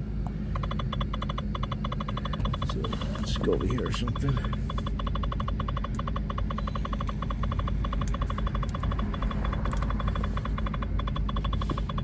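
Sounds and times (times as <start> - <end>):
low steady hum: 0.0 - 12.0
rapid electronic warning chime: 0.5 - 12.0.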